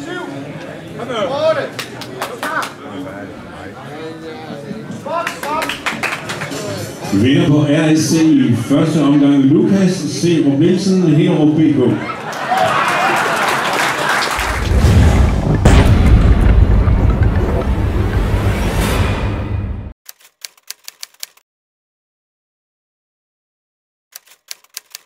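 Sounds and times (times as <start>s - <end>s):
deep bass rumble: 14.4s - 19.8s
sharp hit: 14.6s - 19.9s
rapid clicks: 20.1s - 21.4s, 24.2s - 25.0s.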